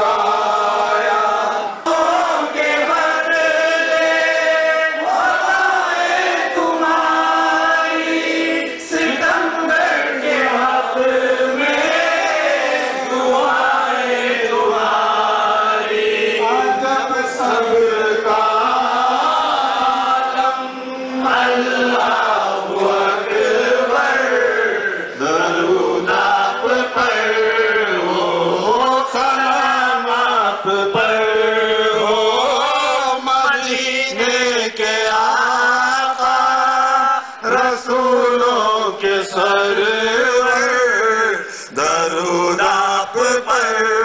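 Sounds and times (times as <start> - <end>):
men chanting devotional song: 0.0 - 44.0.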